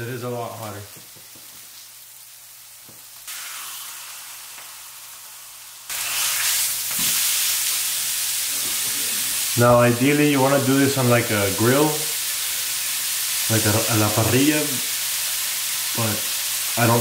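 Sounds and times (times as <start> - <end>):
steak sizzling in a frying pan: 0.1 - 17.0.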